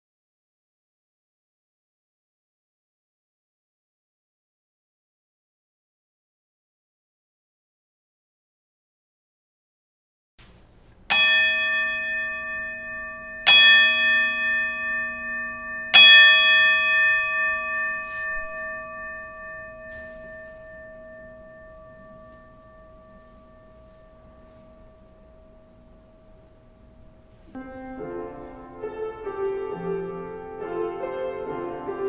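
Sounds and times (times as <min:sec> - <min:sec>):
bell ringing: 0:11.1 - 0:32.0.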